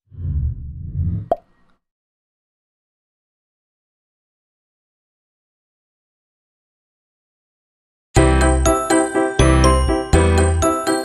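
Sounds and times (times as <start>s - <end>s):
deep low whoosh: 0.0s - 1.4s.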